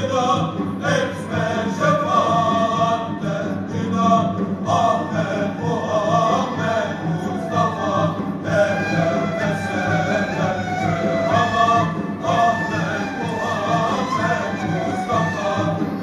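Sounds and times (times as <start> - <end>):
instrumental accompaniment: 0.0 - 16.0
male choir singing: 0.0 - 16.0.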